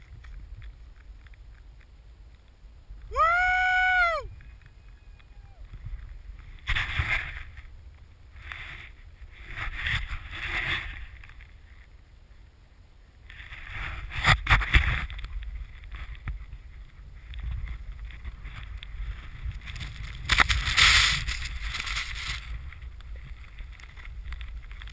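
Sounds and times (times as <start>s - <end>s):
wind rumbling on microphone: 0.0s - 24.9s
snowboard swishing through powder: 19.0s - 22.7s.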